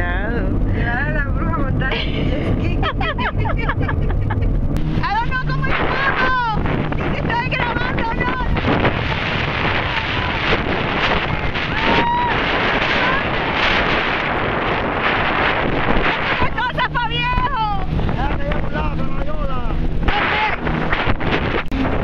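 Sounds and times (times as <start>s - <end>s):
jet ski engine droning: 0.0s - 22.0s
wind buffeting microphone: 0.0s - 22.0s
rushing water: 4.8s - 22.0s.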